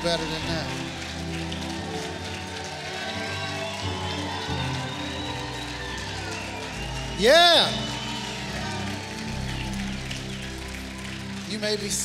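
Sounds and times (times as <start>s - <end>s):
congregation applauding: 0.0s - 12.0s
keyboard playing sustained chords: 0.0s - 12.0s
people cheering: 0.0s - 12.0s.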